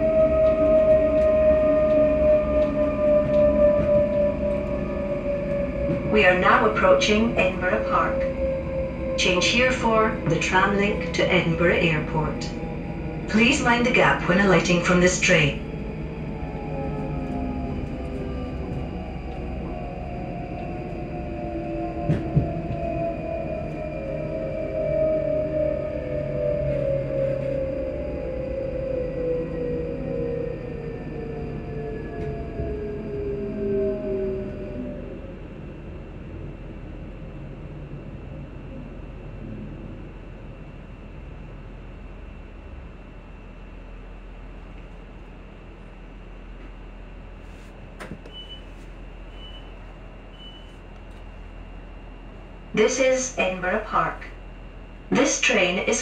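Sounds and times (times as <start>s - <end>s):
steady low hum: 0.0s - 56.0s
train traction motors whining: 0.0s - 56.0s.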